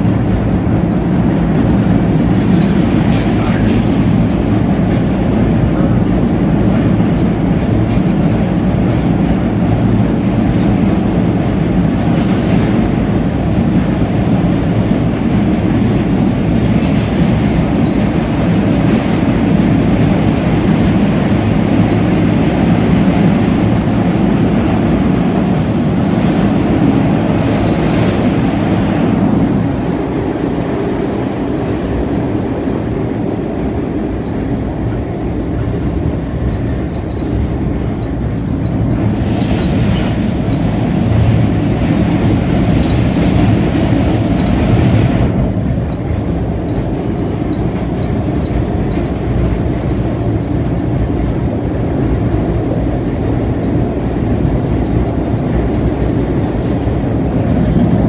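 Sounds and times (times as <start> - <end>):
subway wheels rumbling on rail: 0.0 - 58.0.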